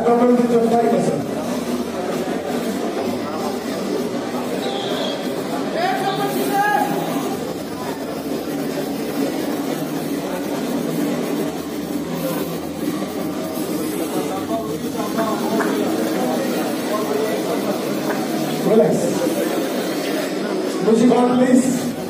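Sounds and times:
crowd murmur in a large hall: 0.0s - 22.0s.

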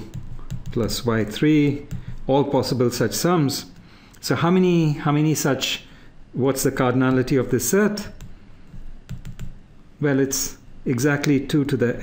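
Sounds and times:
stylus tapping on pen tablet: 0.0s - 1.0s, 1.8s - 2.3s, 8.2s - 9.6s.

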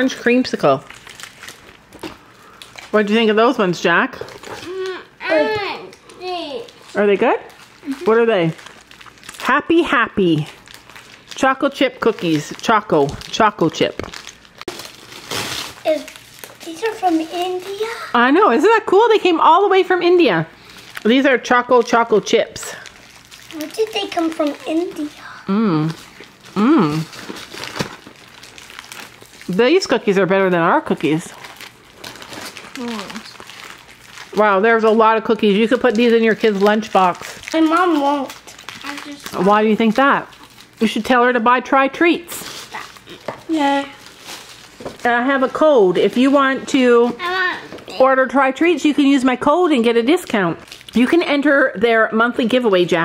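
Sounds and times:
plastic wrappers crinkling: 0.0s - 19.2s, 20.6s - 48.8s, 49.4s - 51.7s
woman speaking: 2.9s - 4.3s, 6.9s - 8.6s, 9.4s - 10.6s, 11.4s - 14.0s, 18.1s - 22.9s, 25.5s - 26.0s, 26.6s - 27.1s, 29.5s - 31.4s, 34.3s - 37.4s, 39.3s - 42.4s, 45.0s - 47.2s, 48.0s - 53.0s.

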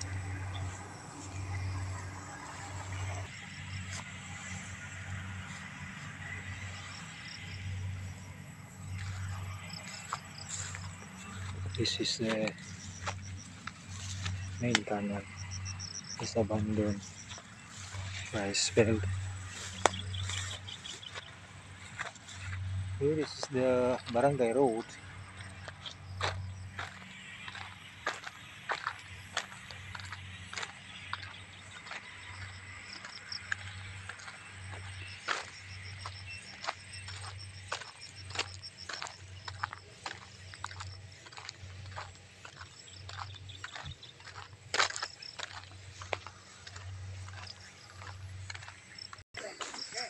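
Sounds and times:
footsteps on gravel: 0.0s - 50.0s.

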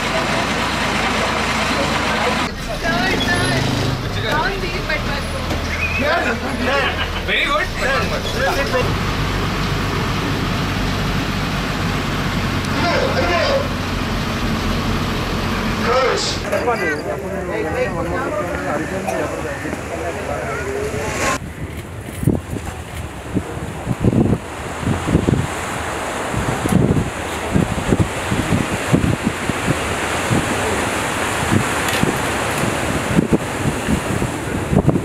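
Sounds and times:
people talking: 0.0s - 8.9s, 12.6s - 13.8s, 15.8s - 21.4s
bus engine humming: 0.0s - 35.0s
road and cabin noise: 0.0s - 35.0s.

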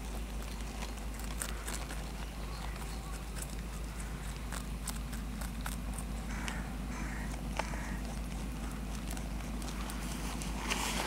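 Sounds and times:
rabbit chewing crunchily: 0.0s - 11.0s.

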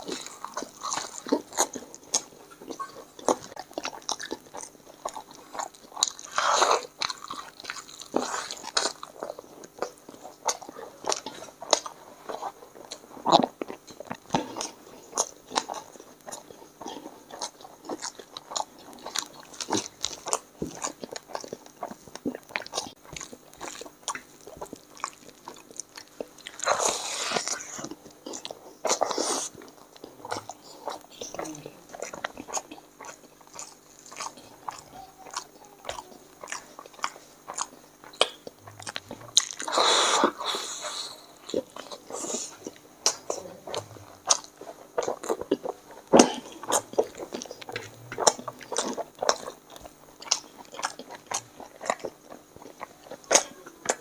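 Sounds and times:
wet chewing and lip smacks: 0.0s - 54.0s.

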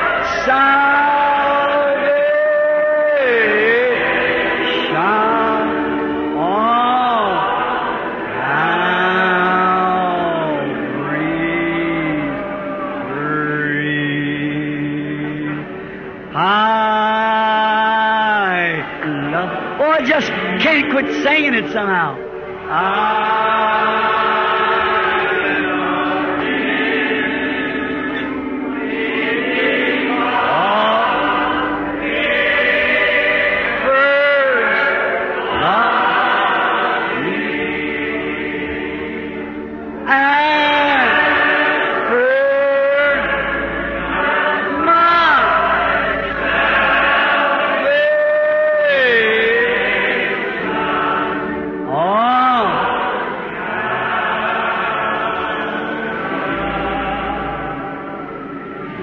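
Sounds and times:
congregation singing a hymn: 0.0s - 59.0s.

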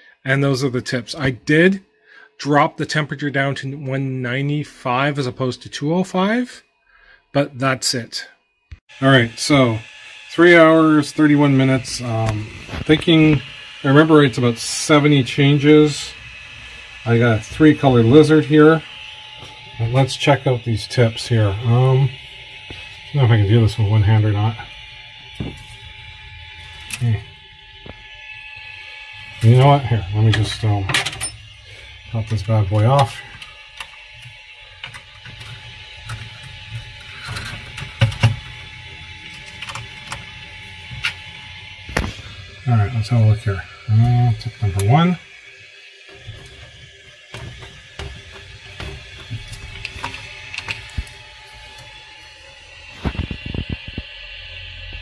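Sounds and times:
steady hum with high tones: 0.0s - 55.0s.

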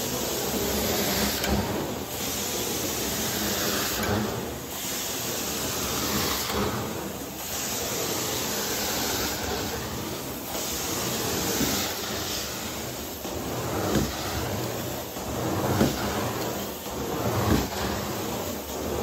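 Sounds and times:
carpet cleaner suction hiss: 0.0s - 19.0s.

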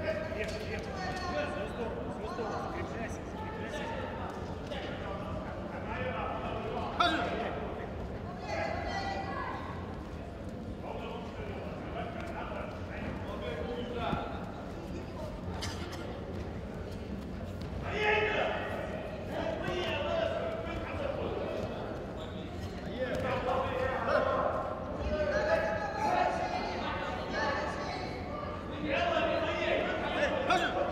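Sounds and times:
voices calling out in echoing hall: 0.0s - 30.9s.

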